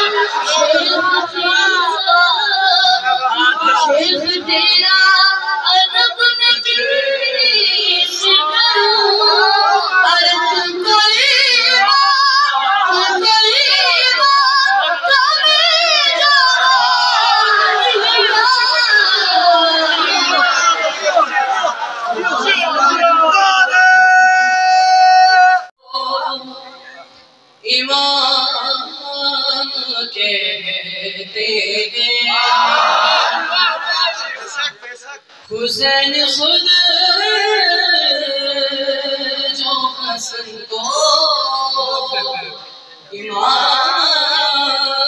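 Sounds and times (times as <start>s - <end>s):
boy singing into a microphone: 0.0s - 20.6s, 27.6s - 33.2s, 35.5s - 45.0s.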